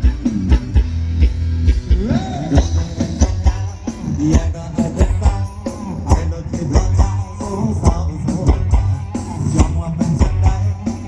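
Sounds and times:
steady drum beat: 0.0s - 11.0s
person singing: 1.9s - 11.0s.

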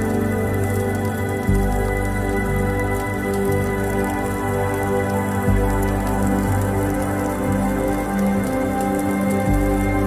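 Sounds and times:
ambient meditation music: 0.0s - 10.0s
rain patter: 0.0s - 10.0s.

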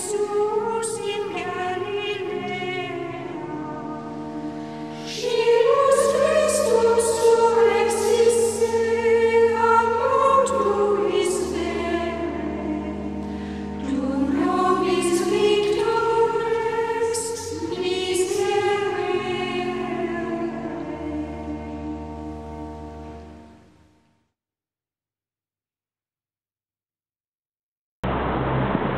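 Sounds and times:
choir singing held notes: 0.0s - 23.0s.

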